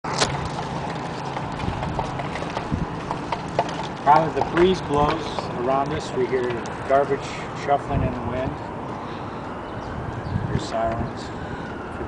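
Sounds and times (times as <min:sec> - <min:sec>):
litter rustling in wind: 0:00.0 - 0:12.0.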